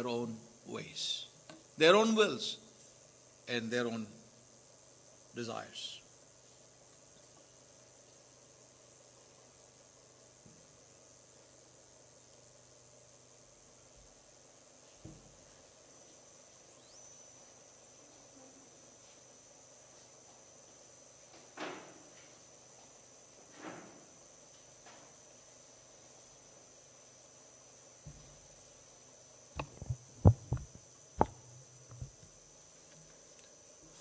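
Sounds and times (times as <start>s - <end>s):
faint low hum: 0.0s - 34.0s
faint steady hiss: 0.0s - 34.0s
dull thumps: 29.6s - 32.2s.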